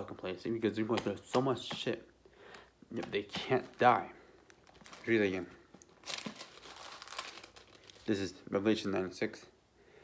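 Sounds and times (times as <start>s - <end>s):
paper pages rustling: 3.2s - 8.4s.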